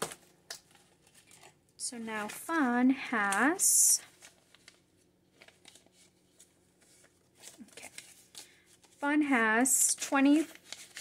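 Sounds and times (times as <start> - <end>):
paper banknotes rustling: 0.0 - 11.0
plastic pouch being handled: 4.0 - 9.0, 10.0 - 11.0.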